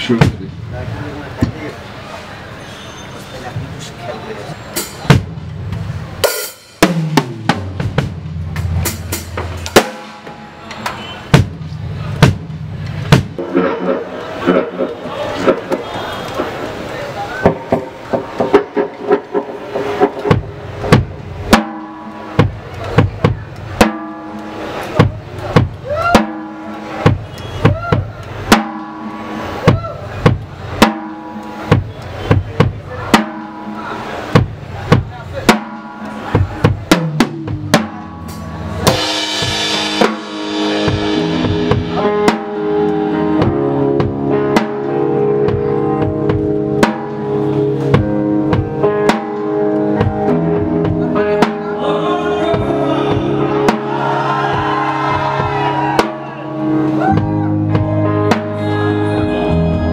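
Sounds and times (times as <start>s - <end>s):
drum hits: 0.0s - 0.7s, 4.8s - 16.6s, 17.4s - 51.8s, 52.5s - 56.4s
rock band playing live: 4.7s - 59.9s
cymbal crash: 37.2s - 42.8s.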